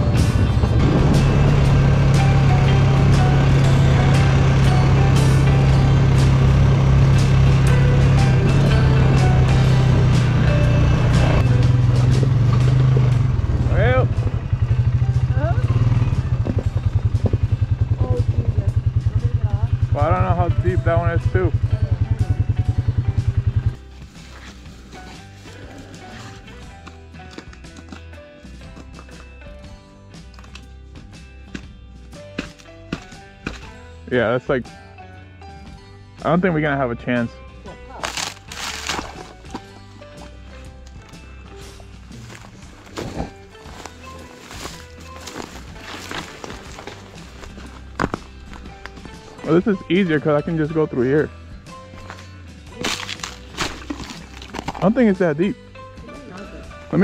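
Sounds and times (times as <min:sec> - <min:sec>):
atv engine running: 0:00.0 - 0:29.4, 0:38.1 - 0:55.2.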